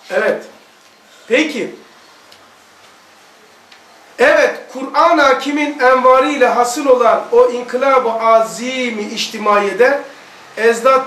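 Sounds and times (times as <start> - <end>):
low steady background hiss: 0.0 - 11.0.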